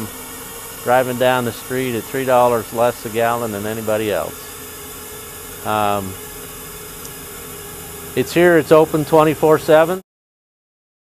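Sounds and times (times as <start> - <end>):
faint steady hum: 0.0 - 10.0
steady background hiss: 0.0 - 10.0.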